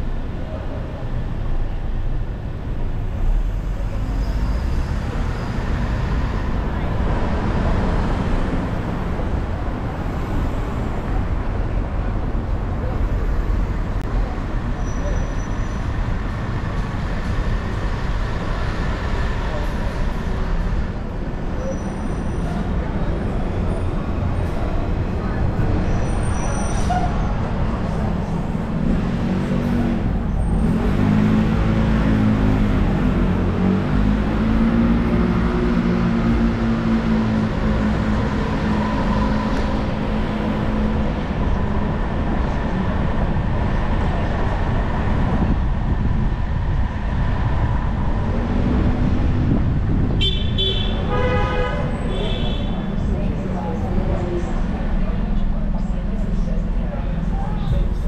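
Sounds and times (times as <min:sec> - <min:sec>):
car engine and tyre rumble: 0:00.0 - 0:58.0
vehicles passing: 0:00.0 - 0:58.0.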